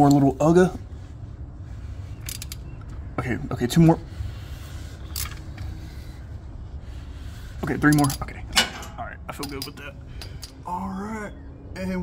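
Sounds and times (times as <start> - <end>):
ratcheting wrench clicking: 2.2 - 2.7.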